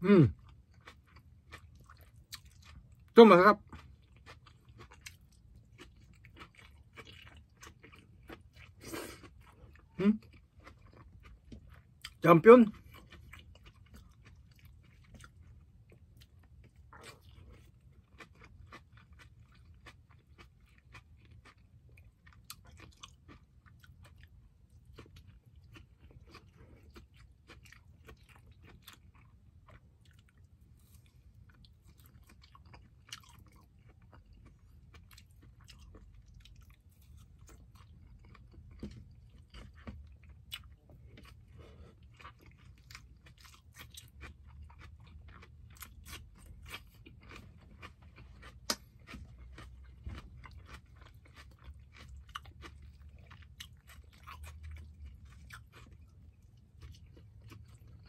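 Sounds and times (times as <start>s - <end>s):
low steady hum: 0.0s - 58.0s
person chewing food: 0.0s - 58.0s.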